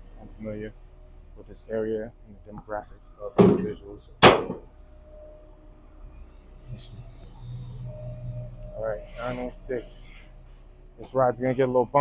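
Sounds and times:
faint low hum: 0.0 - 12.0
metal locker door slamming: 3.4 - 4.6.

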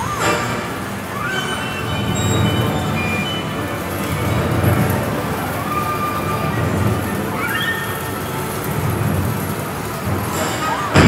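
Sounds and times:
busy game arcade din: 0.0 - 11.0
rising electronic chirp: 1.1 - 4.9.

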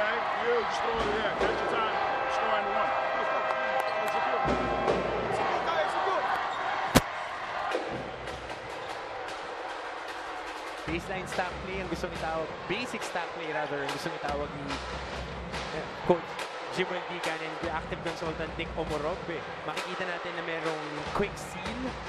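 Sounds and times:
music over public address: 7.9 - 22.0.

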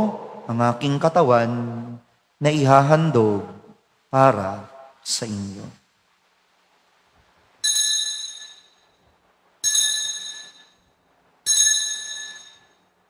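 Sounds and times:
bright high altar bells: 7.6 - 12.9.

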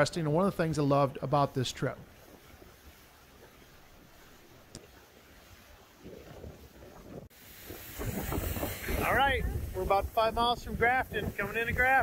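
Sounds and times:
faint wind and water noise: 0.0 - 12.0
wind buffeting microphone: 1.0 - 12.0.

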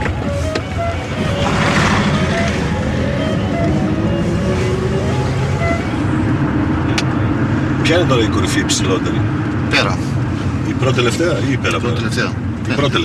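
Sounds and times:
faint melody: 0.0 - 6.8
car engine and tyres rumbling: 0.0 - 13.0.

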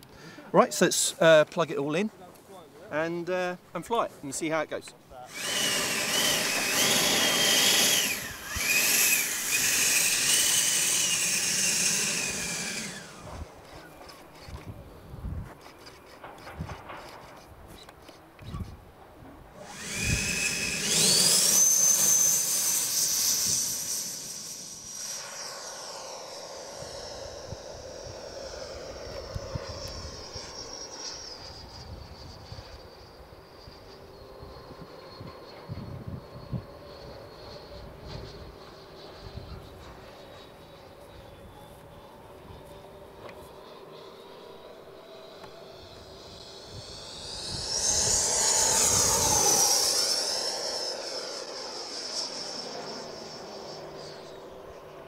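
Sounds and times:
electric ducted fan whine: 4.6 - 15.4, 19.5 - 55.0.

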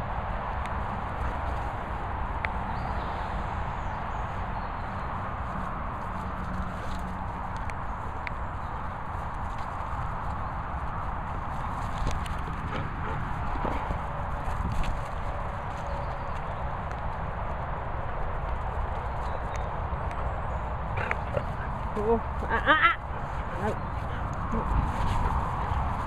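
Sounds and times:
rushing outdoor noise: 0.0 - 26.0
dogs footfalls on grass: 0.3 - 26.0.

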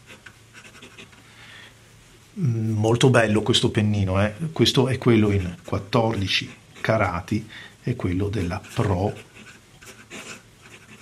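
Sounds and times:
pen nib scratching on paper: 0.0 - 1.2, 5.0 - 7.2, 8.1 - 11.0.

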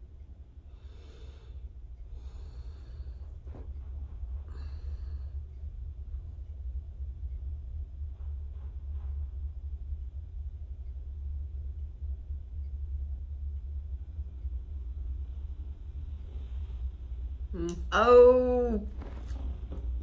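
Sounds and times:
deep low drone: 0.0 - 20.0.

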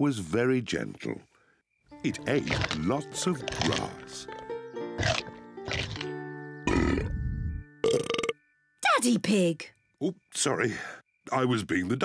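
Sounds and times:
soft background music: 1.9 - 12.0.

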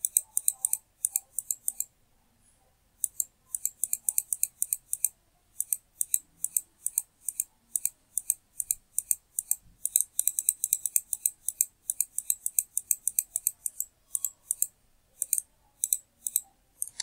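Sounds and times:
mouse button clicking: 12.5 - 17.0.

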